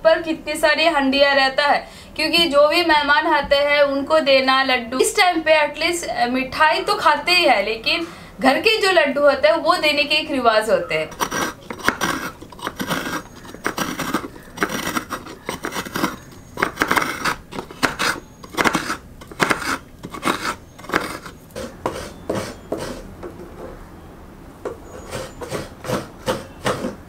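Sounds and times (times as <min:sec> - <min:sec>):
grated coconut falling on steel plate: 0:11.1 - 0:23.0
coconut rasping on scraper blade: 0:11.1 - 0:23.8, 0:24.6 - 0:27.0.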